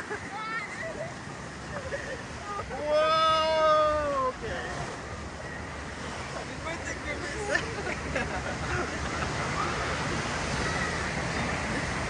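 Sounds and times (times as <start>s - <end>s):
whitewater rapids rushing: 0.0s - 12.0s
person shouting: 2.7s - 4.3s.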